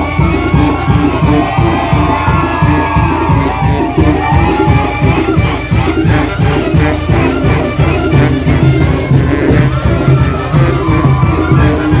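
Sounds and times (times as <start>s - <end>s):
brass band playing: 0.0s - 12.0s
crowd shouting and cheering: 0.0s - 12.0s.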